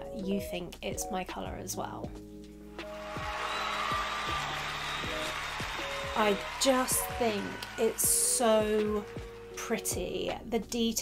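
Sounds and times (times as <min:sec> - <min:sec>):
music with kick-drum beat: 0:00.8 - 0:10.5.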